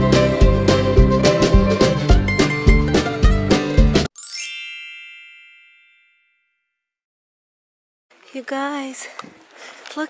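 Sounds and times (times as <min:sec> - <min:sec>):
bell-like chime: 0:04.2 - 0:06.8.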